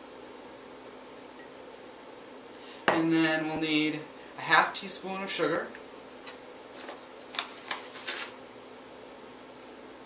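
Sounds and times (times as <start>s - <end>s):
low room tone hiss: 0.0s - 10.0s.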